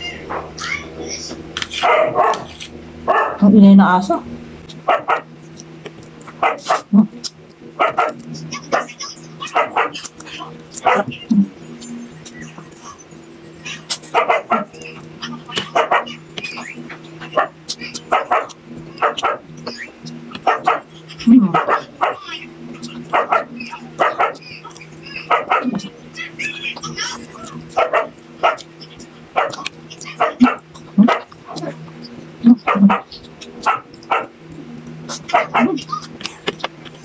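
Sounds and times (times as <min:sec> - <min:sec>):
low steady hum: 0:00.0 - 0:37.0
dog barking: 0:01.8 - 0:02.5, 0:03.1 - 0:03.4, 0:04.9 - 0:05.3, 0:06.4 - 0:06.9, 0:07.8 - 0:10.1, 0:10.8 - 0:11.1, 0:14.1 - 0:14.7, 0:15.7 - 0:16.2, 0:18.1 - 0:19.4, 0:20.4 - 0:20.9, 0:21.5 - 0:22.2, 0:23.1 - 0:24.4, 0:25.3 - 0:25.9, 0:27.8 - 0:28.6, 0:29.4 - 0:31.3, 0:32.6 - 0:34.3, 0:35.2 - 0:35.8.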